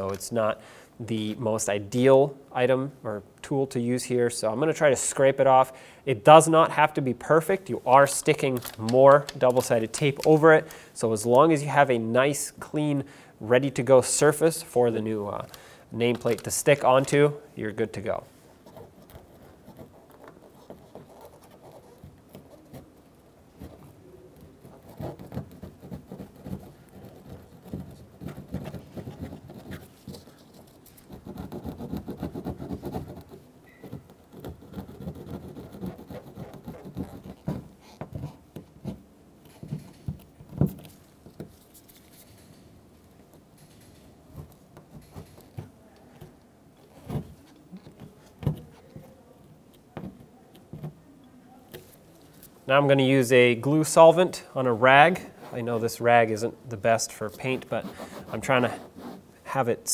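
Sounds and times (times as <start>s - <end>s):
plastic tool scraping adhesive: 18.6s - 42.6s, 43.3s - 51.0s.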